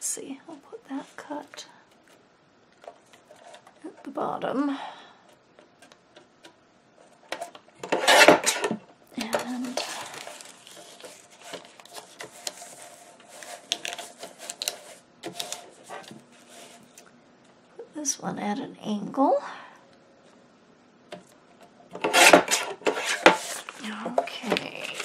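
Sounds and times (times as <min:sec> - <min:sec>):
paper rustling and sliding: 0:07.0 - 0:17.0, 0:22.0 - 0:25.0
paper scraping on trimmer: 0:07.8 - 0:08.8, 0:22.0 - 0:25.0.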